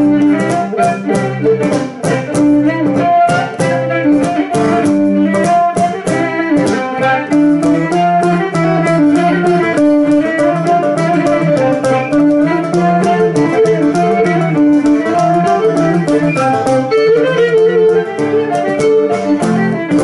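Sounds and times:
bowed string folk melody: 0.0 - 20.0
plucked lute strokes: 0.0 - 20.0.

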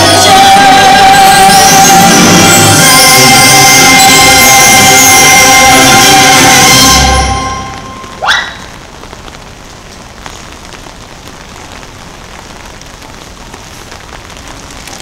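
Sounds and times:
soundtrack music: 0.0 - 8.2.

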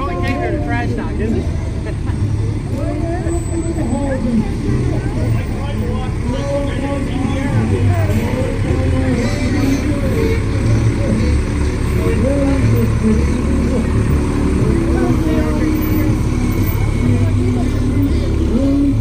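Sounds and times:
diesel truck engine rumbling: 0.0 - 19.0
voices chattering and calling: 0.0 - 19.0.

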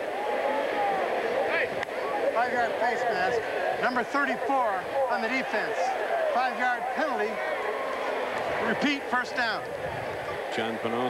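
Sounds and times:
crowd noise: 0.0 - 11.0
referee voice over public address: 1.4 - 7.5, 8.5 - 11.0.

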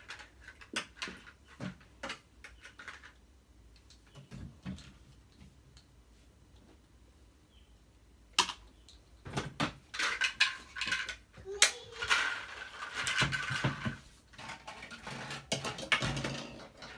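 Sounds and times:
plastic toy dishes clattering: 0.0 - 3.2, 9.3 - 16.9.

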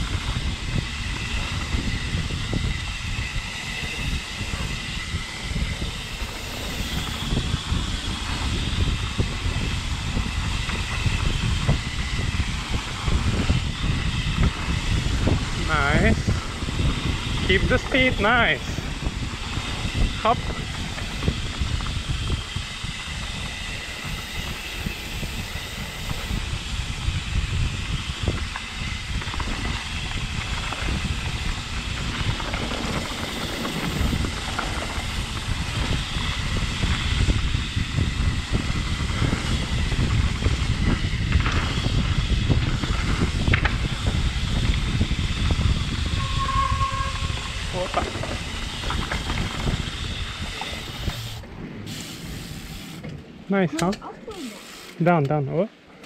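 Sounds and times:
bike tyres rolling on dirt: 0.0 - 53.6
wind buffeting microphone: 0.0 - 54.6
bike rattling: 0.0 - 55.2
brief high squeal: 46.1 - 47.8.

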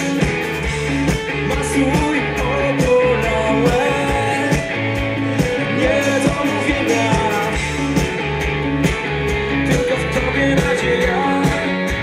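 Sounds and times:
bass guitar: 0.0 - 12.0
electric guitars: 0.0 - 12.0.

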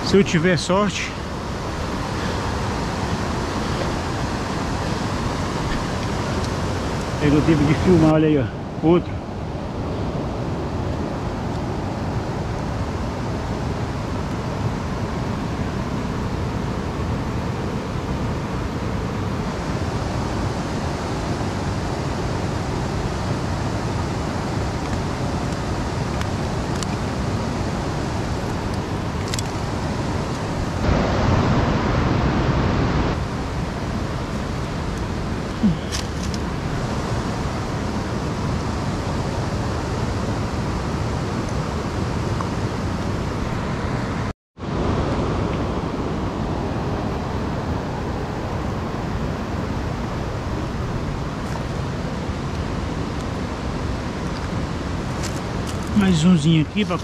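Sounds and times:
river rushing over rapids: 0.0 - 57.0.

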